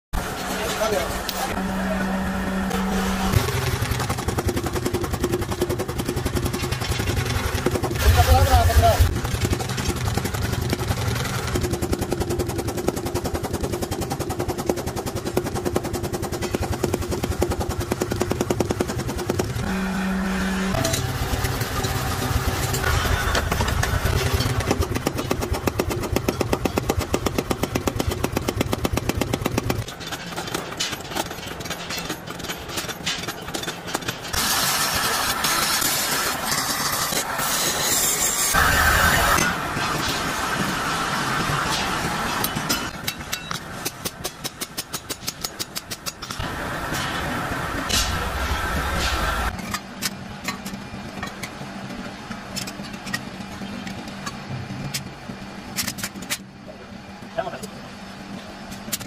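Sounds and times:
power hammer pounding metal: 0:00.2 - 0:49.6.

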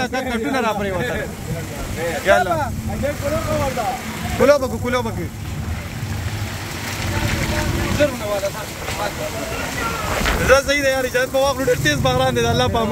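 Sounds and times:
auto-rickshaw engine rumble: 0:00.0 - 0:12.9
people talking: 0:00.0 - 0:12.9.

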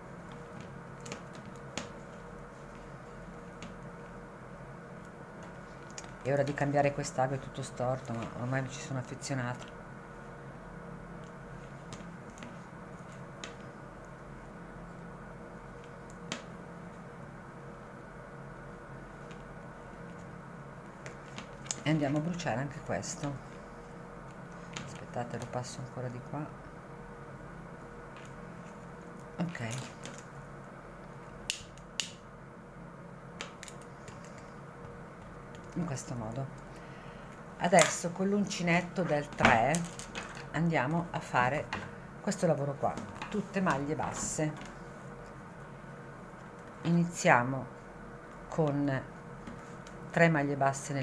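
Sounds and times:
low room hum: 0:00.0 - 0:51.0
needle small clicks: 0:31.4 - 0:32.2.

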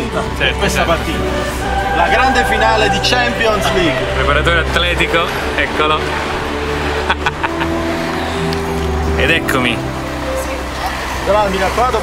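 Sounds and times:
car engine and road hum: 0:00.0 - 0:12.0.

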